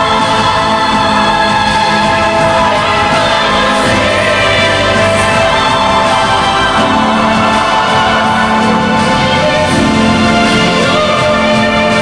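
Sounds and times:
backing track: 0.0s - 12.0s
choir-like backing vocals: 0.0s - 12.0s.

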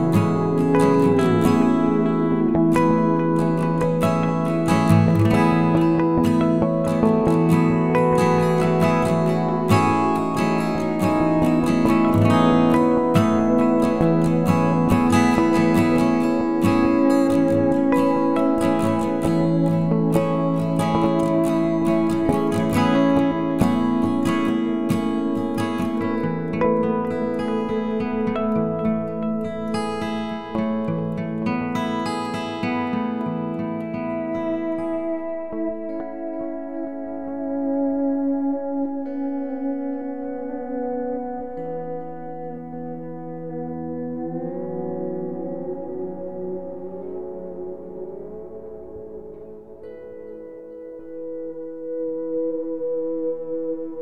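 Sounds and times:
strummed acoustic guitar: 0.0s - 54.0s.

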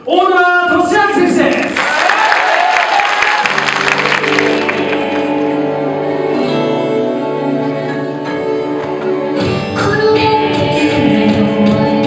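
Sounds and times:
performance music with held notes: 0.0s - 12.0s
audience applause: 1.5s - 5.6s.

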